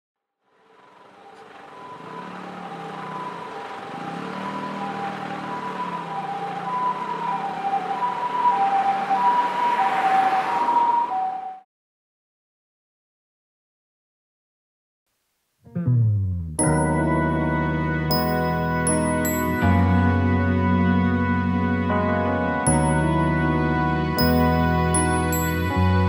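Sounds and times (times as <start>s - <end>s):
traffic noise: 0.5s - 11.6s, 16.8s - 26.0s
two-tone emergency siren: 0.6s - 11.7s, 16.6s - 26.0s.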